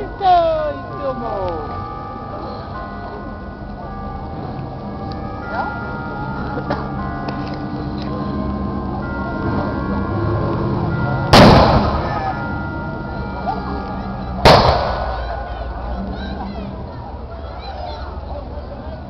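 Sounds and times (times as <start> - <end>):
musket shots: 14.5 - 15.2.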